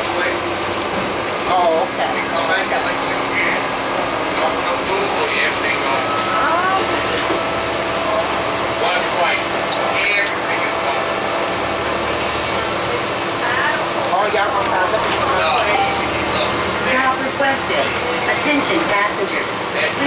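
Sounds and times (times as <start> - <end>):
bus diesel engine hum: 0.0 - 20.0
indistinct voices talking: 1.4 - 20.0.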